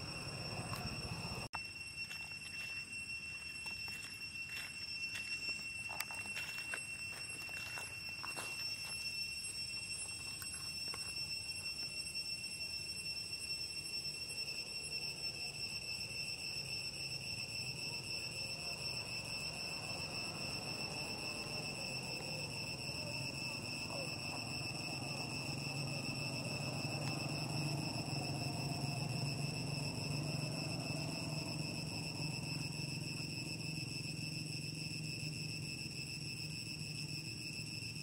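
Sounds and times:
high-pitched insect drone: 0:00.0 - 0:38.0.

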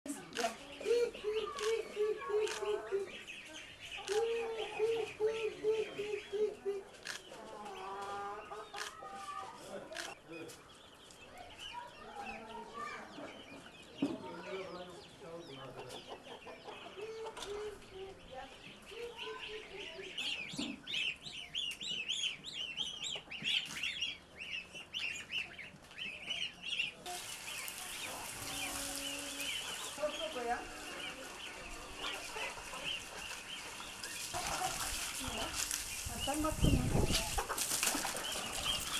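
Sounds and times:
chickens clucking: 0:00.1 - 0:38.9.

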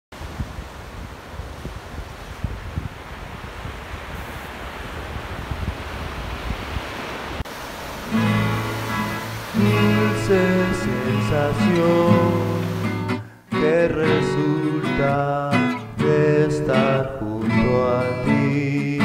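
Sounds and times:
wind rumbling on microphone: 0:00.2 - 0:12.9
surf breaking on a beach: 0:00.2 - 0:13.4
acoustic guitar chords: 0:08.0 - 0:19.0.

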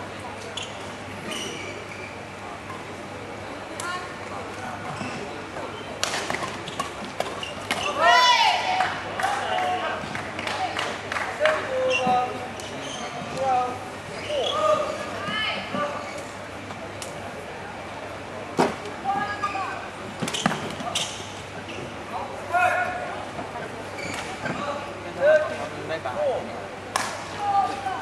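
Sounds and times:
shoes squeaking on court: 0:00.3 - 0:02.8, 0:04.8 - 0:08.0, 0:11.8 - 0:16.4, 0:19.2 - 0:22.0, 0:23.6 - 0:24.8.

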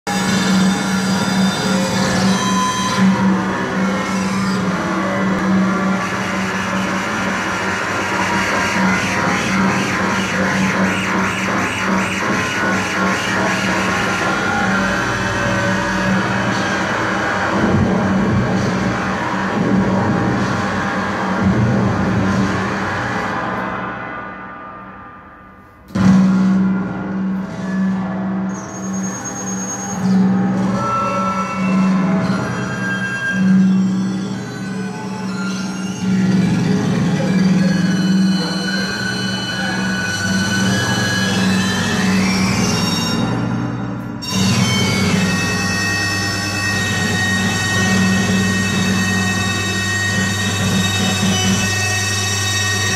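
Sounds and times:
live electronic music: 0:00.1 - 0:24.4.

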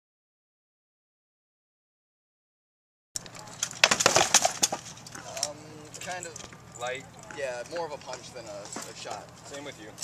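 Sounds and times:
rattan swords striking shields: 0:03.6 - 0:04.9.

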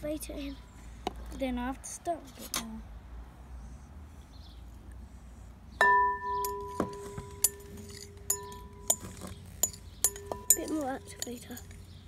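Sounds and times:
glass bowl struck and ringing: 0:05.8 - 0:11.3.

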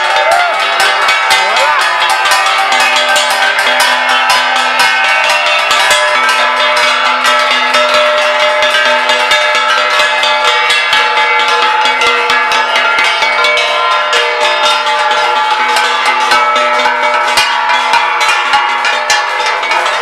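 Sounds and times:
brass plates beaten with sticks: 0:00.0 - 0:20.0.

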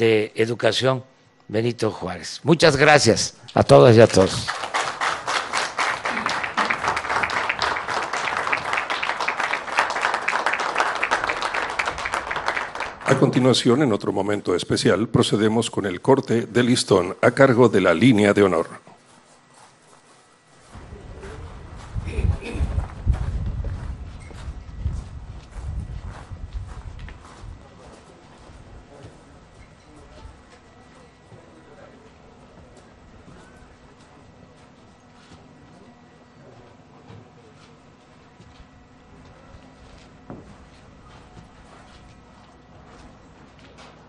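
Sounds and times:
footsteps on concrete floor: 0:18.8 - 0:30.7, 0:32.6 - 0:35.8, 0:37.1 - 0:44.0
outdoor crowd hubbub: 0:26.6 - 0:41.5.

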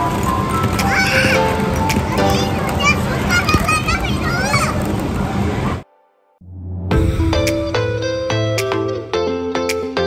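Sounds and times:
children's voices and shouts: 0:00.8 - 0:04.9.

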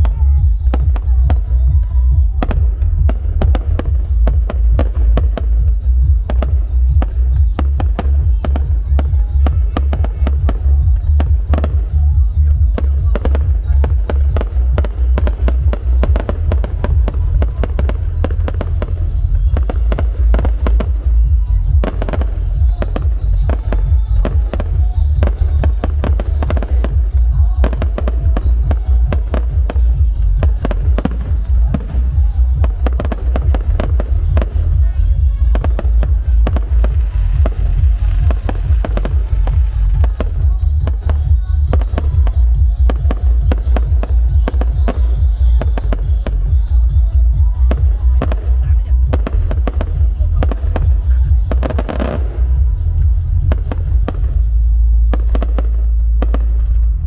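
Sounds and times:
deep rumble: 0:00.0 - 0:57.0
fireworks bangs and crackles: 0:00.0 - 0:57.0.

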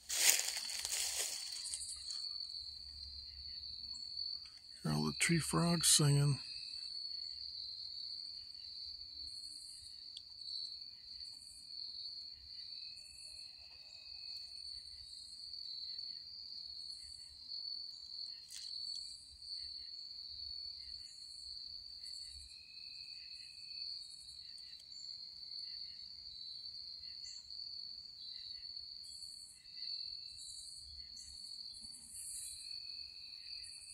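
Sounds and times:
tree frogs trilling: 0:00.1 - 0:06.4.

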